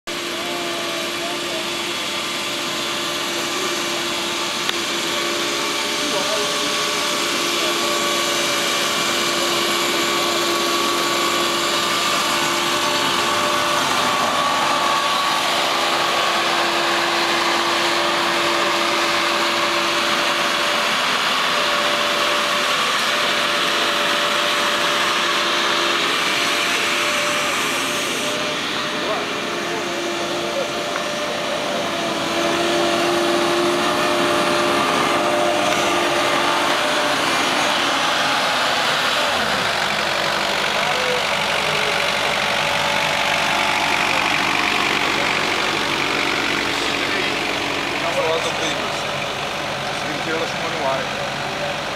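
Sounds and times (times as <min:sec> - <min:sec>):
reel mower running: 0:00.0 - 0:51.9.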